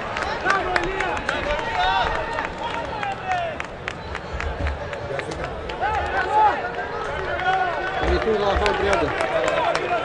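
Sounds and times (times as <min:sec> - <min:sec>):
sharp claps: 0:00.0 - 0:10.0.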